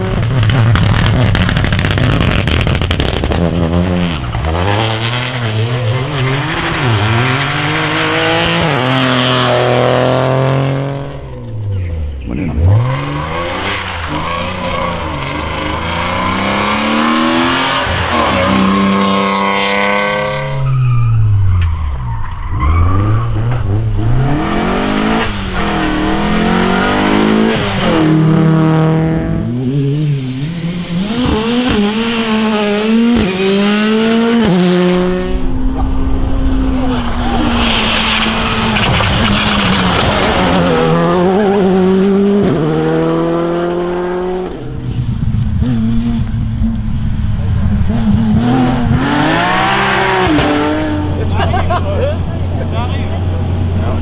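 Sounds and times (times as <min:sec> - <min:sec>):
rally cars racing past: 0:00.0 - 0:54.0.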